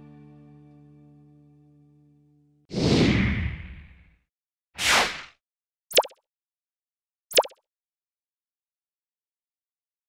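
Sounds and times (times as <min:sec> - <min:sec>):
cartoon pop sound effect: 0:05.9 - 0:06.2, 0:07.3 - 0:07.6.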